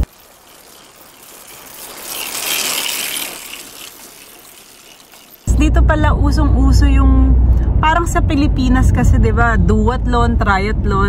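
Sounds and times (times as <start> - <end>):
bicycle tyres and chains whirring: 0.0 - 5.5
freewheels ticking: 0.0 - 5.5.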